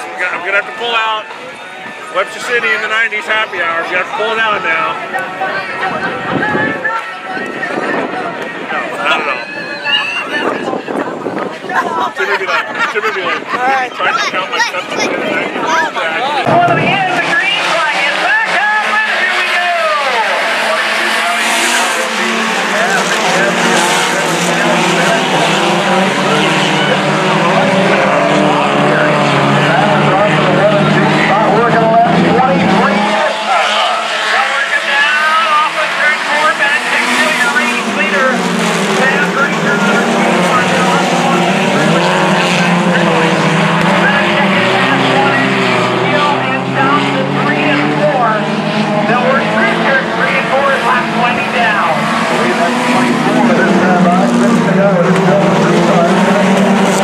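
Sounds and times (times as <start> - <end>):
race car engines: 0.0 - 57.0.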